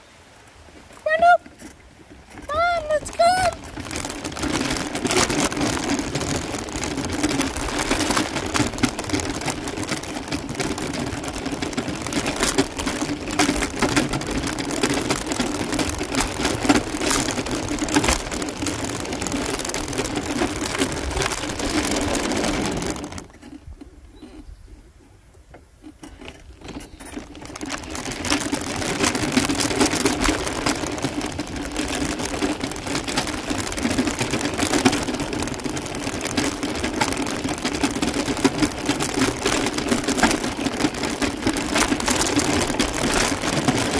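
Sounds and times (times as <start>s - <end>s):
tyres on gravel: 0.6s - 43.9s.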